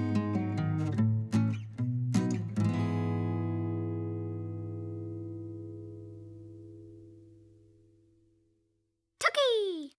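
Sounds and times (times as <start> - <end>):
high voice calling a word: 9.2 - 10.0.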